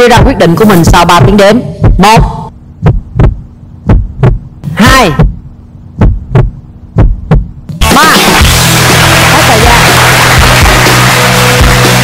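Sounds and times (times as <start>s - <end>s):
heartbeat thumps: 0.0s - 7.8s
low steady hum: 0.0s - 7.8s
loud music: 7.8s - 12.0s.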